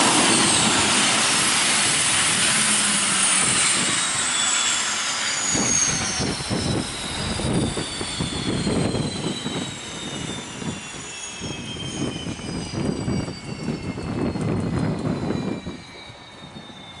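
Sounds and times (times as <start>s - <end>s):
propeller low rumble: 0.0s - 17.0s
turbine whine falling in pitch: 0.0s - 17.0s.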